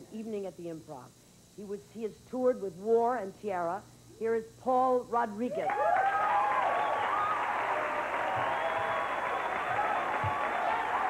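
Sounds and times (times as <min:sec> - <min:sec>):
audience applauding: 0:05.7 - 0:11.0.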